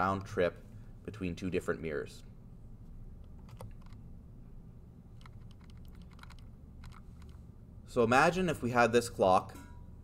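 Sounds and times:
low steady hum: 0.0s - 10.0s
faint keyboard keystrokes: 3.2s - 4.0s, 5.2s - 7.4s.

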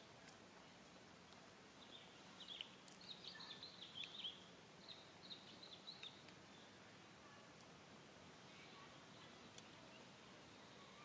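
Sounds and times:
faint outdoor ambience: 0.0s - 11.0s
small bird chirping: 0.6s - 6.8s.

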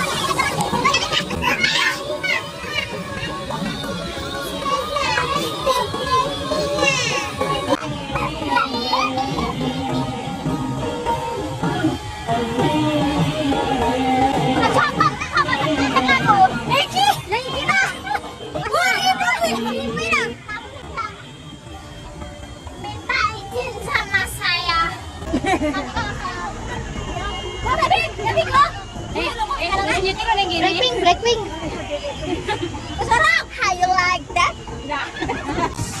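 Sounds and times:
women shouting excitedly: 0.0s - 21.2s
music: 0.0s - 36.0s
women chattering and laughing: 0.0s - 36.0s.

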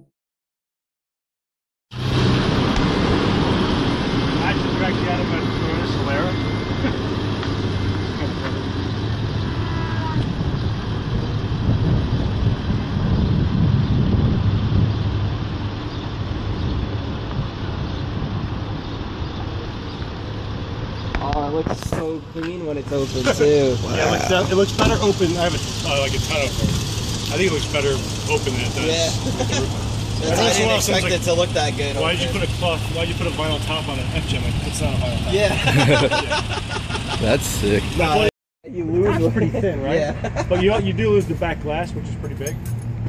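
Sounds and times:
wind buffeting microphone: 8.6s - 20.3s.

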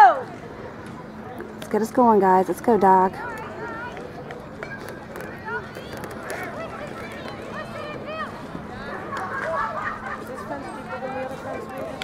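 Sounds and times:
faint crowd chatter and calls: 0.0s - 12.0s.

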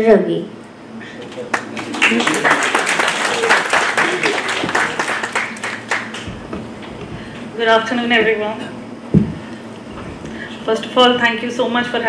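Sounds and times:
voices: 1.0s - 6.3s
audience applauding: 1.2s - 6.5s.

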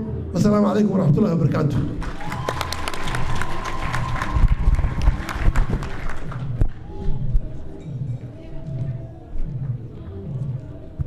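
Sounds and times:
audience applause: 2.0s - 6.6s.

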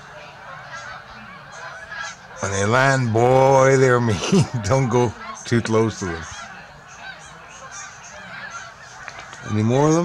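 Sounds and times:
flock of geese honking: 0.0s - 10.0s.

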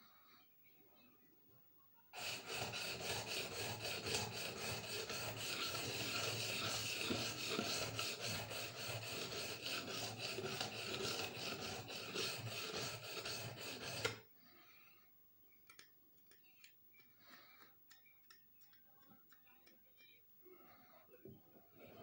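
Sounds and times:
knife scraping on whetstone: 2.2s - 14.2s.

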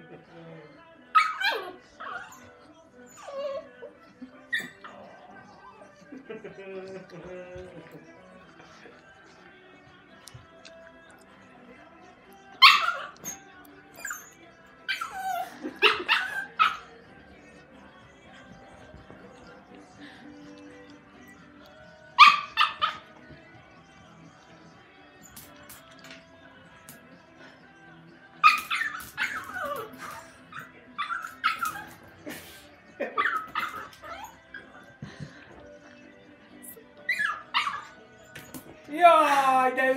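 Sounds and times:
quiet background music: 0.0s - 39.9s
puppy barking in high yips: 1.2s - 2.4s, 12.6s - 13.4s, 14.0s - 16.9s, 22.2s - 23.1s, 28.4s - 32.0s, 33.2s - 34.7s, 37.1s - 37.9s.

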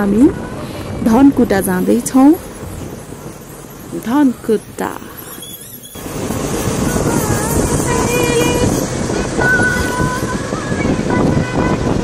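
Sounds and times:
vehicle engine road and wind noise: 0.0s - 12.0s.

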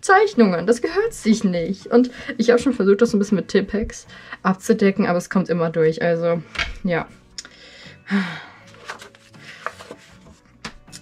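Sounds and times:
paper rustling and tapping: 8.7s - 11.0s.

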